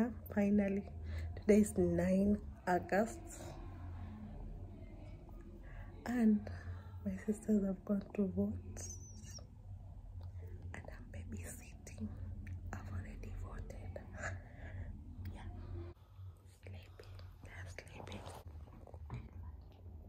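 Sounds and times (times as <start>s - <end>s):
woman whispering: 0.0s - 18.5s
steady low hum: 0.0s - 20.0s.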